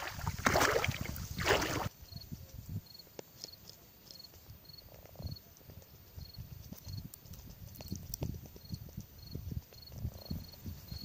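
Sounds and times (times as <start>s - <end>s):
cricket chirping: 1.4s - 11.0s.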